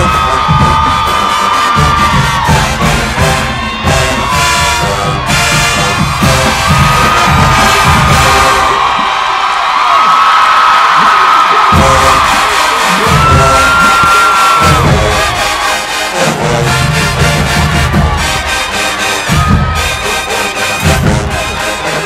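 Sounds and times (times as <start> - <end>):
bass drums and percussion: 0.0 - 9.1, 11.7 - 15.6, 16.3 - 21.7
crowd cheering: 0.0 - 22.0
marching band brass: 0.0 - 22.0.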